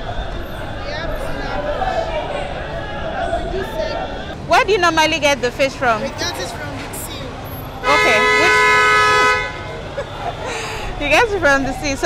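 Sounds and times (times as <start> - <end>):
market and street background: 0.0 - 12.0
two-tone horn blast: 7.8 - 9.7.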